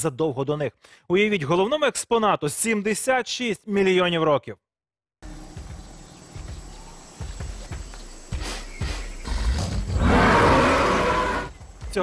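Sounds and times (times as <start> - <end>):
creature growling roar: 9.3 - 11.5.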